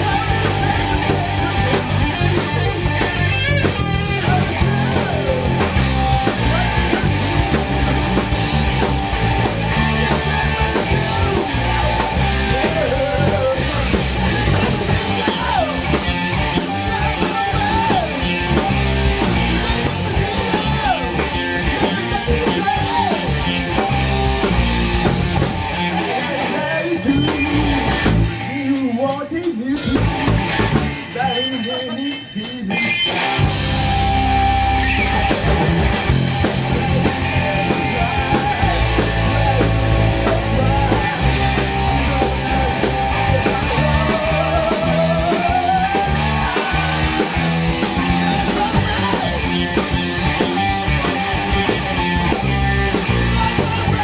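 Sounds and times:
person singing: 0:00.0 - 0:07.7, 0:09.4 - 0:23.8, 0:26.0 - 0:30.4, 0:36.5 - 0:50.1, 0:52.9 - 0:54.0
distorted electric guitar: 0:00.0 - 0:54.0
drum kit: 0:00.0 - 0:54.0
electric bass: 0:00.0 - 0:54.0.

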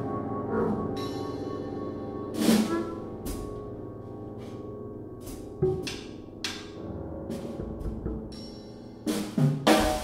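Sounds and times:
chamber jazz quartet playing: 0:00.0 - 0:09.7.

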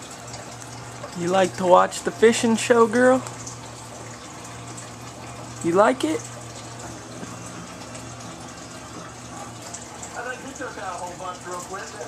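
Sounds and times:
electric desk fan running: 0:00.0 - 0:12.0.

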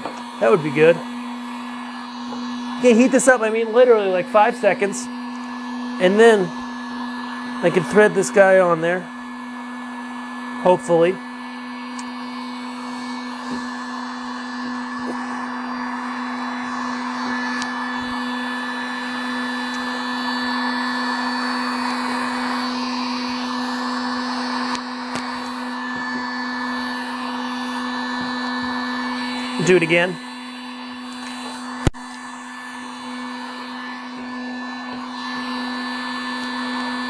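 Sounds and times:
heat gun humming: 0:00.0 - 0:37.0.

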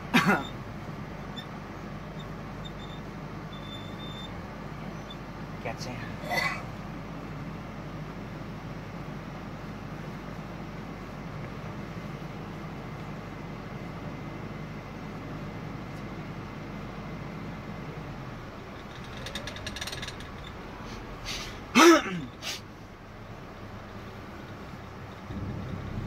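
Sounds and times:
car engine and road noise: 0:00.0 - 0:26.0.

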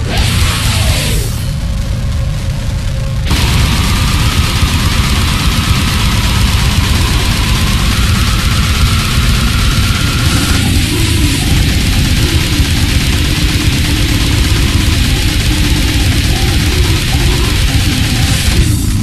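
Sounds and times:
distorted guitars and bass: 0:00.0 - 0:19.0
rapid drumming: 0:03.2 - 0:19.0.

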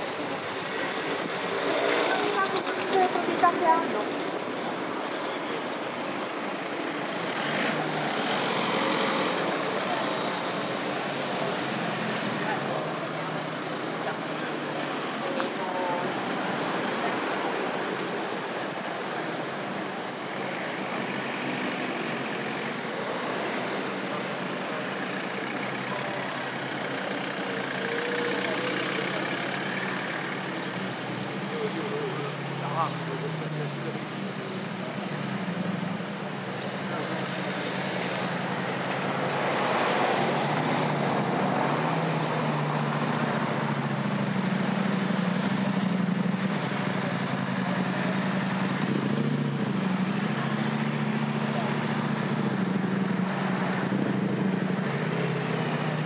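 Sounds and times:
cars passing slowly: 0:00.0 - 0:56.0
indistinct voices: 0:00.0 - 0:56.0.

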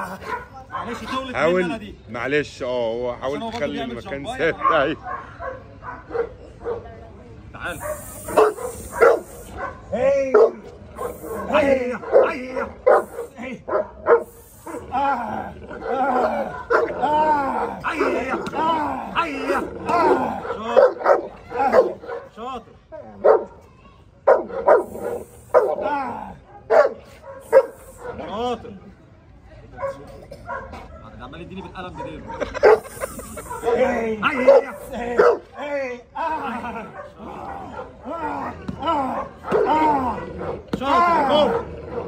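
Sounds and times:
dog barking: 0:00.2 - 0:01.2, 0:04.5 - 0:06.9, 0:07.7 - 0:14.8, 0:16.2 - 0:17.0, 0:20.4 - 0:22.4, 0:23.2 - 0:25.8, 0:26.5 - 0:28.4, 0:29.8 - 0:35.6, 0:36.9 - 0:38.0, 0:39.1 - 0:40.6, 0:41.3 - 0:42.0.

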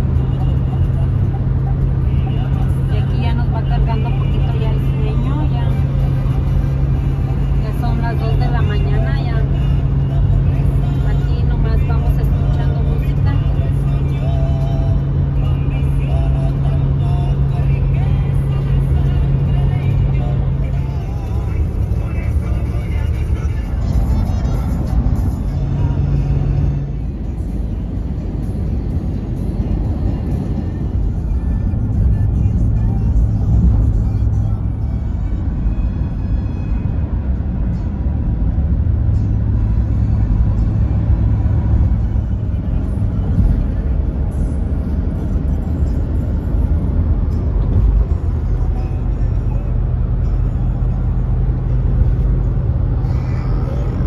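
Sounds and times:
car road and engine noise: 0:00.0 - 0:54.0
music in car cabin: 0:00.0 - 0:54.0
person speaking on car audio: 0:01.1 - 0:06.4, 0:07.4 - 0:14.8.

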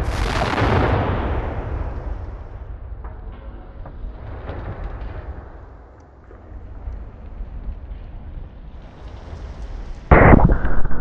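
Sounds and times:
fireball burning low rumble: 0:00.0 - 0:11.0
faint crackles: 0:04.3 - 0:11.0.

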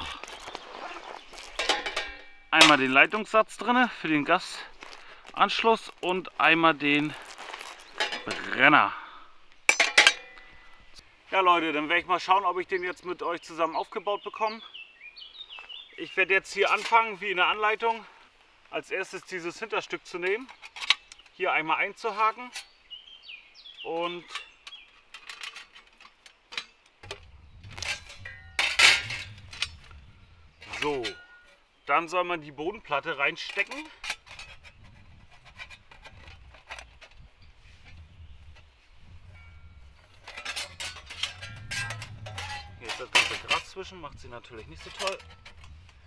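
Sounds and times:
metal panels clinking: 0:00.4 - 0:03.5, 0:07.3 - 0:08.6, 0:09.7 - 0:10.5, 0:24.1 - 0:31.6, 0:39.2 - 0:46.0
metallic scrape: 0:25.2 - 0:31.6, 0:33.6 - 0:46.0.

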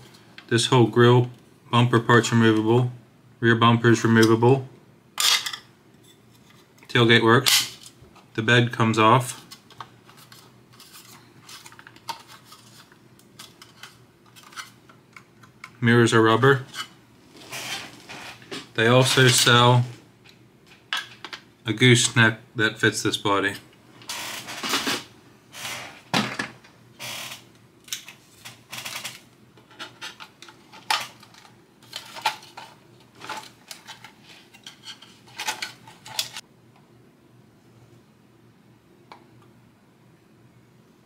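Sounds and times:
faint steady hum: 0:00.0 - 0:41.0.

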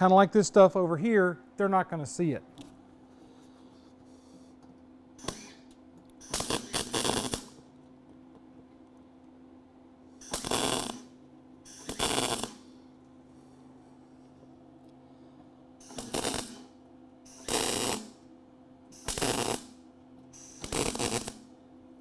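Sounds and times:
welder bursts: 0:05.2 - 0:07.6, 0:10.2 - 0:12.7, 0:15.8 - 0:18.2, 0:18.9 - 0:19.8, 0:20.4 - 0:21.4.

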